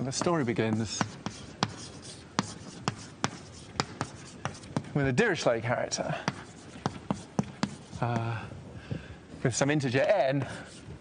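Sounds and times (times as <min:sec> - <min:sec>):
chalk scratching on blackboard: 0:00.0 - 0:04.9, 0:06.2 - 0:08.2, 0:10.5 - 0:11.0
chalk tapping on board: 0:00.0 - 0:04.9, 0:06.2 - 0:08.3.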